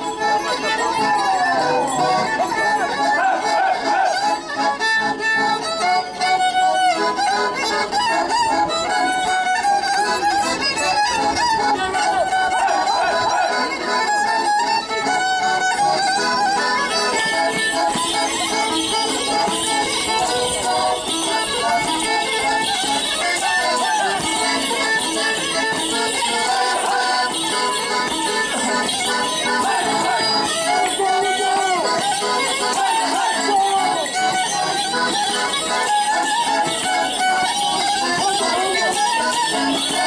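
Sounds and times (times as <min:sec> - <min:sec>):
fiddle folk dance tune: 0:00.0 - 0:40.0.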